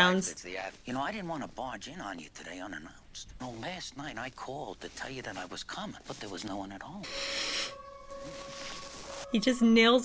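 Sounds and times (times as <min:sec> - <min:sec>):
held music note: 0:07.0 - 0:10.0.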